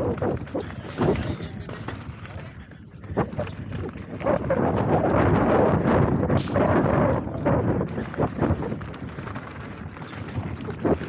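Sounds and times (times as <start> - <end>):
bike tyres on dirt and leaves: 0.0 - 11.0
wind buffeting microphone: 0.0 - 11.0.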